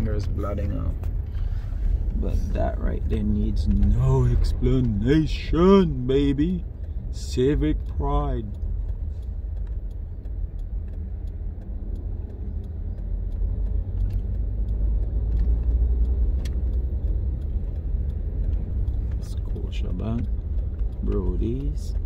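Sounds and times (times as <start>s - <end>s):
car engine and tyres rumbling: 0.0s - 22.0s
faint light clicks: 3.0s - 22.0s.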